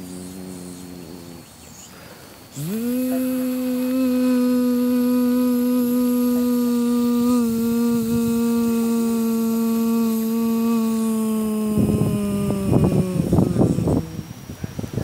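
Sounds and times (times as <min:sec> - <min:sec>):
person humming a long note: 0:00.0 - 0:14.6.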